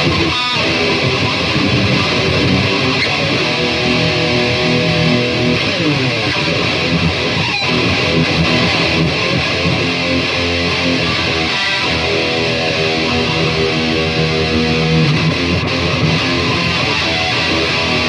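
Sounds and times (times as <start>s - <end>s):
electric guitar through amp: 0.0s - 18.0s
guitar pitch glide: 0.0s - 18.0s.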